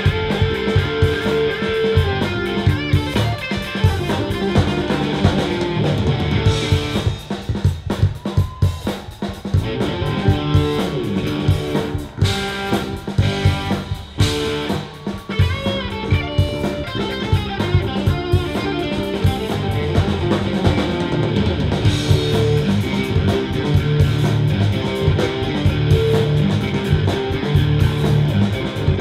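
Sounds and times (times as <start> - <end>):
electric guitar lead lines: 0.0 - 8.6, 9.2 - 29.0
bass guitar: 0.0 - 29.0
drums: 0.0 - 29.0.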